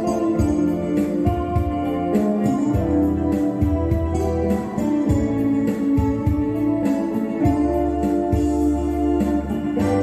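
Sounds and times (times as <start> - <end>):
electric guitars playing ballad melody: 0.0 - 10.0
steady drum beat: 0.0 - 10.0
sustained keyboard chords: 0.0 - 10.0.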